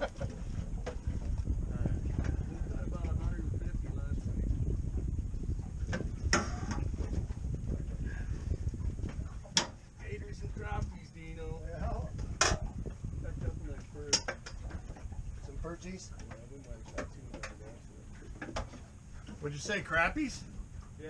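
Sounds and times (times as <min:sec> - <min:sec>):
low rumble: 0:00.0 - 0:15.8.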